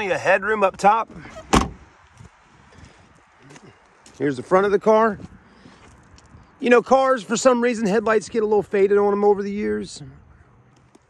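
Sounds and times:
car door slamming: 0:01.4 - 0:01.8.

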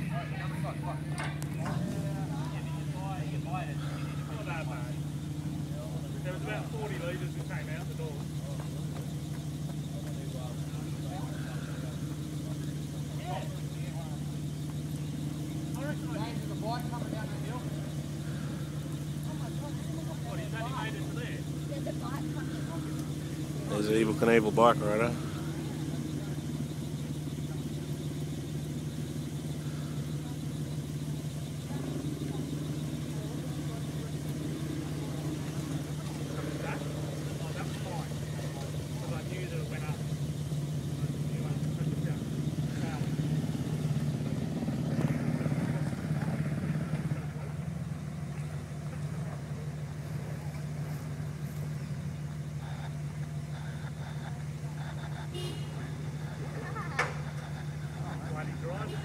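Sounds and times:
vehicle engine under load: 0:00.0 - 0:59.0.

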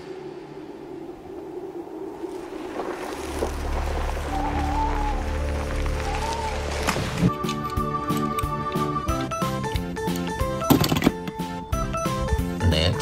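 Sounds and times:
low drone: 0:00.0 - 0:09.5
wavering moaning high tone: 0:04.2 - 0:09.5.

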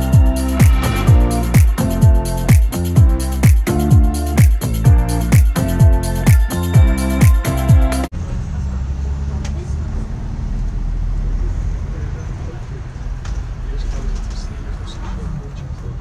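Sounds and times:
bus engine drone: 0:08.1 - 0:16.0.

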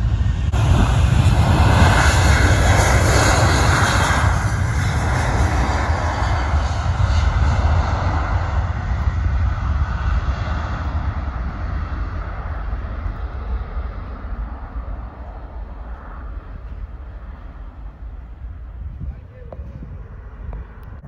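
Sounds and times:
jet engines roaring: 0:00.0 - 0:21.0.

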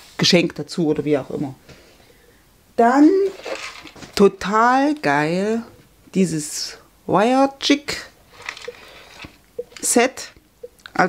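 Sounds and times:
person speaking: 0:09.6 - 0:11.0.

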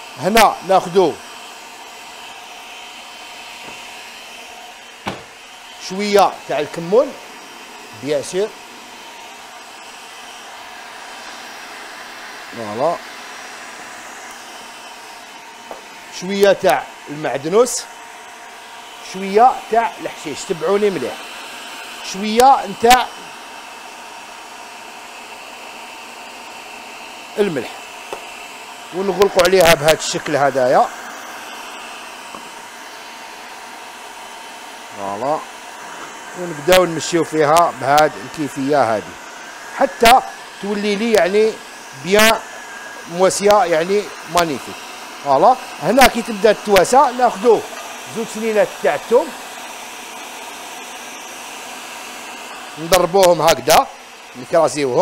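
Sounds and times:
food processor running: 0:00.0 - 0:55.0.

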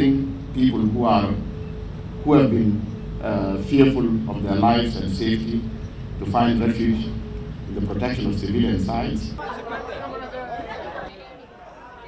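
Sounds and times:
indistinct chatter of people: 0:01.2 - 0:12.0.

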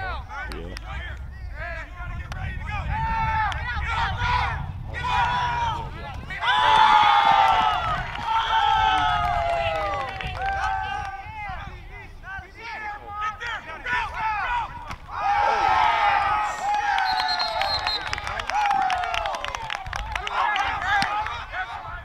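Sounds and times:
people shouting and cheering: 0:01.6 - 0:22.0.

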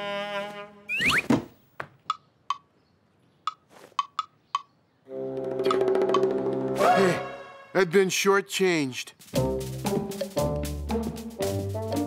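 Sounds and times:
rising whistle-like swoop: 0:00.9 - 0:01.3.

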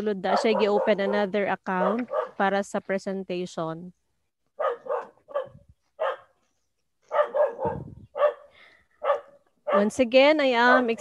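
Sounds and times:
dog barking: 0:00.2 - 0:02.4, 0:04.6 - 0:06.4, 0:07.1 - 0:10.0, 0:10.6 - 0:11.0.

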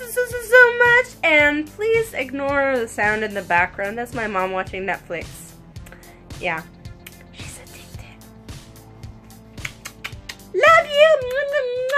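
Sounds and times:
television background music: 0:00.0 - 0:11.9.

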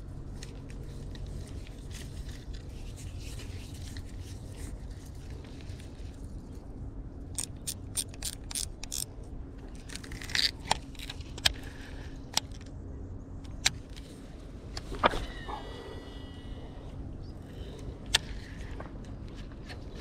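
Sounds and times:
low steady rumble: 0:00.0 - 0:20.0
fishing reel clicks: 0:07.4 - 0:09.1.

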